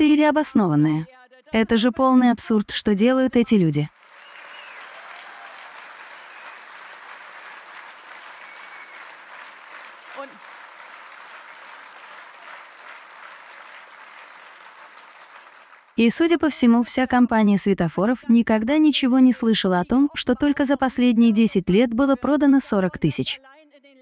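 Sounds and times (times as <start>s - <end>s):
large audience applauding: 3.9s - 16.0s.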